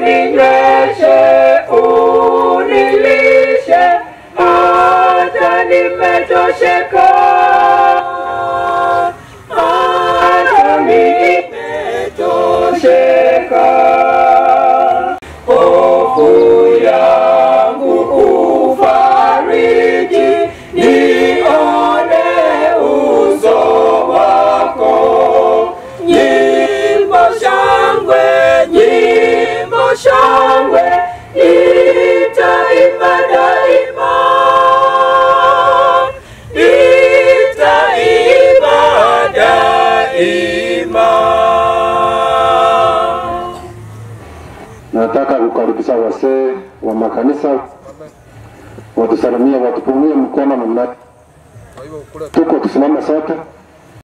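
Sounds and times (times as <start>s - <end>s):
group singing unaccompanied in harmony: 0.0s - 46.5s.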